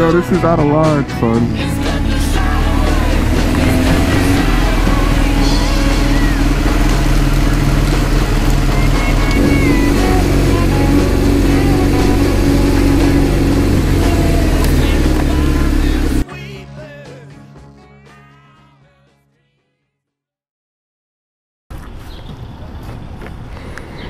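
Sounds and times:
music: 0:00.0 - 0:20.3
motorcycle engine running: 0:01.5 - 0:16.2.

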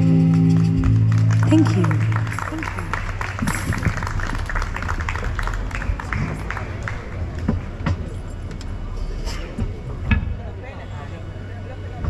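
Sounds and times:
steady low bass: 0:00.0 - 0:12.0.

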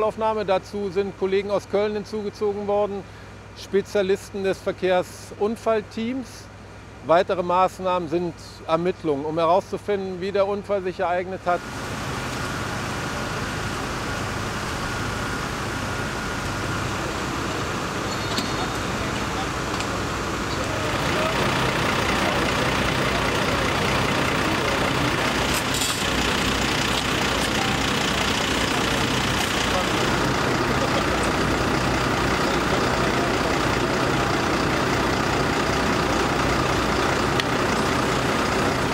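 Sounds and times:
diesel engines idling: 0:00.0 - 0:38.9
faint voices: 0:18.2 - 0:36.7.

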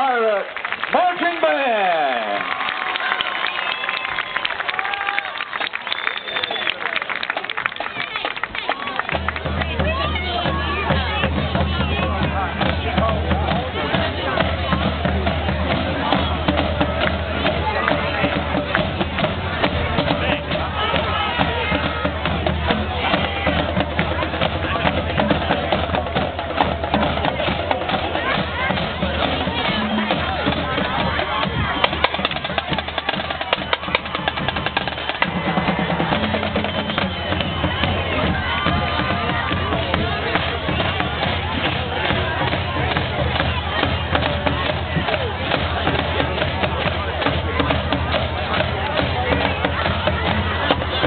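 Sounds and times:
crowd chatter: 0:00.0 - 0:51.0
drumline playing cadence: 0:00.0 - 0:51.0.

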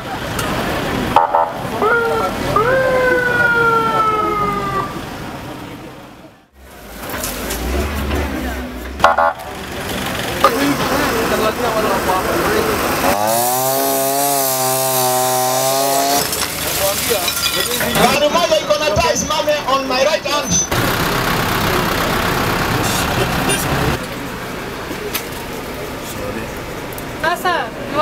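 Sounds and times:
ambulance siren wailing: 0:01.2 - 0:05.1.

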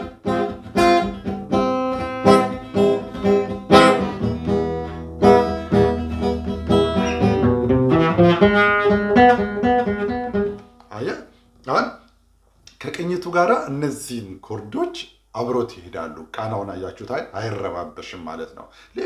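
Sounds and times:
acoustic guitar strummed chords: 0:00.0 - 0:10.9
guitar picked single notes: 0:00.0 - 0:10.9.

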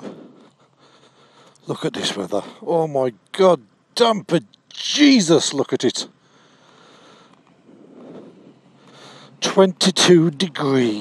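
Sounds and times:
faint outdoor hiss: 0:00.0 - 0:11.0.

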